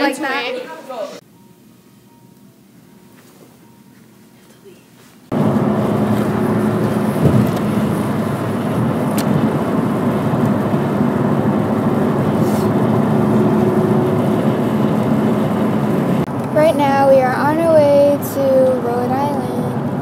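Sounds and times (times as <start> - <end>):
engine drone: 5.3 - 20.0.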